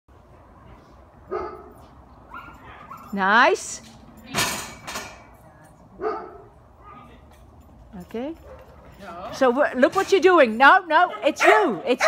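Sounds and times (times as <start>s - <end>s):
dog barking: 1.3s - 1.7s, 6.0s - 7.0s, 11.1s - 12.0s.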